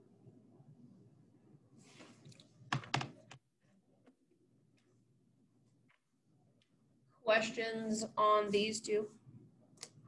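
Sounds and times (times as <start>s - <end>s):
soft rustle: 1.8s - 2.5s
keyboard keys clicking: 2.7s - 3.4s.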